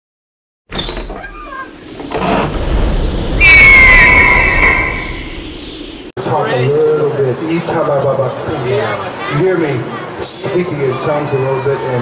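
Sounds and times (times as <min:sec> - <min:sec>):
rush of noise: 0:01.8 - 0:06.1
bird of prey screech: 0:03.4 - 0:05.5.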